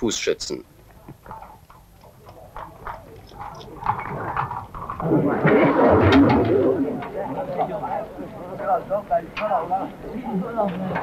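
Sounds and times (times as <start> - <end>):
horse hooves clopping on pavement: 0.7 - 5.2
crowd voices: 0.7 - 11.0.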